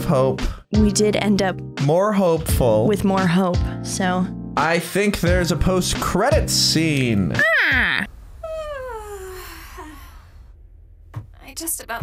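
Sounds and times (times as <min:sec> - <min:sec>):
girl sighing: 0:07.4 - 0:10.4.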